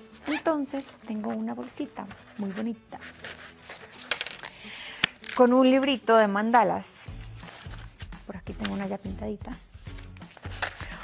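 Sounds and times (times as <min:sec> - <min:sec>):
soft rubbing of pouch: 0:00.0 - 0:04.1, 0:07.0 - 0:11.0
pouch clicking: 0:00.0 - 0:05.6, 0:09.8 - 0:11.0.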